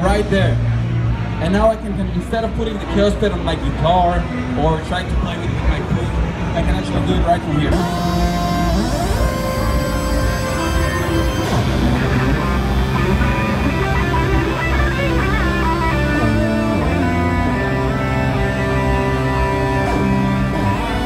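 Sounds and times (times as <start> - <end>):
electric guitar with pitch glides: 4.0 - 21.0.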